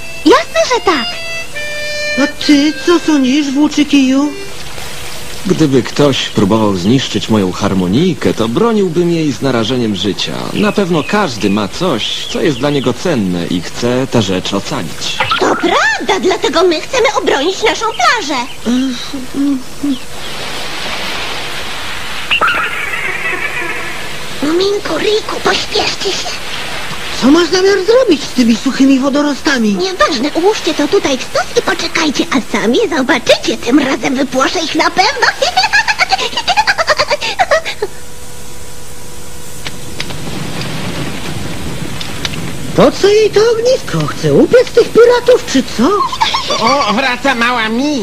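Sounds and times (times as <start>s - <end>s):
high held tone: 0.0s - 4.8s, 15.2s - 16.4s
surf rushing on beach: 0.0s - 17.0s, 18.6s - 37.9s, 39.0s - 48.0s
small fire hissing and crackling: 3.1s - 48.0s
cartoon character giggling: 15.2s - 16.1s, 18.7s - 20.0s, 22.3s - 24.1s, 35.3s - 38.0s, 45.9s - 47.0s.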